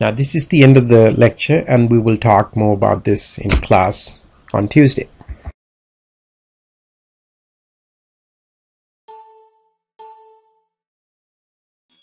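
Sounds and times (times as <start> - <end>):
bell-like chime: 9.1 - 10.8.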